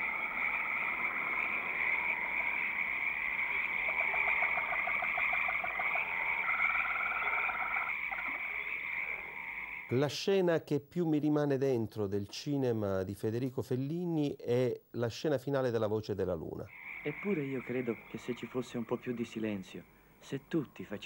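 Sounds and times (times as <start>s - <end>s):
frogs croaking: 0.0s - 10.1s, 16.7s - 21.0s.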